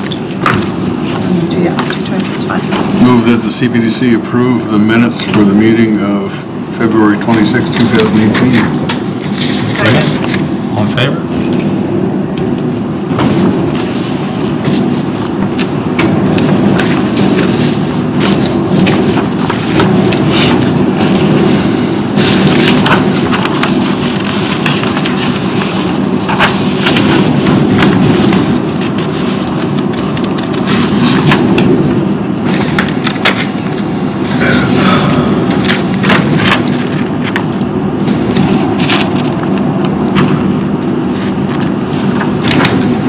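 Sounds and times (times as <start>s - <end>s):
low room rumble: 0.0s - 43.0s
papers rustling: 13.2s - 33.9s, 35.4s - 43.0s.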